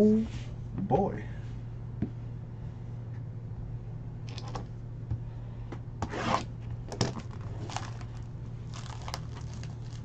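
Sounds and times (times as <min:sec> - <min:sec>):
steady low hum: 0:00.0 - 0:10.0
trading cards rustling: 0:07.1 - 0:10.0.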